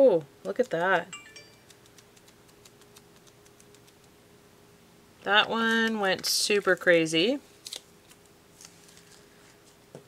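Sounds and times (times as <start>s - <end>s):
light steady hum: 0.0s - 10.0s.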